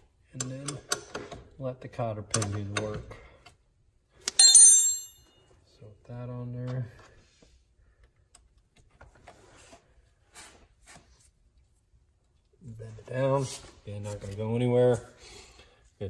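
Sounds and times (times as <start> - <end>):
metal tool clanking against steel: 4.3 - 5.3.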